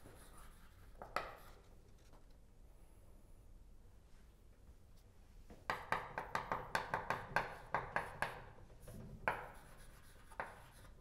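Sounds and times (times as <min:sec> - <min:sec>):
chalk tapping on blackboard: 0:00.0 - 0:01.6, 0:05.6 - 0:11.0.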